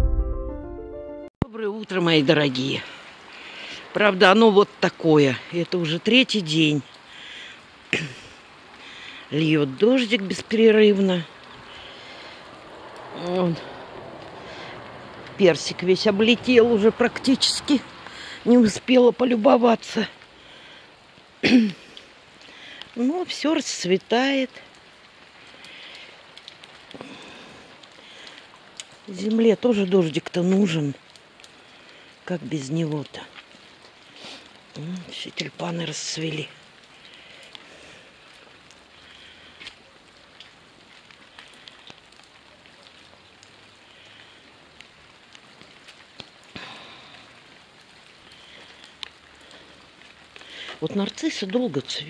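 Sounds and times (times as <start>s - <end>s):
steady rain hiss: 1.5s - 52.0s
single raindrop ticks: 21.1s - 23.0s, 24.6s - 27.2s, 27.8s - 29.1s, 35.9s - 50.8s.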